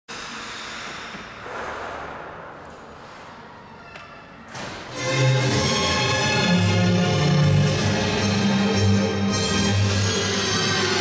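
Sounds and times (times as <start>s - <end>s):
ice rink ambient hiss: 0.1s - 3.6s.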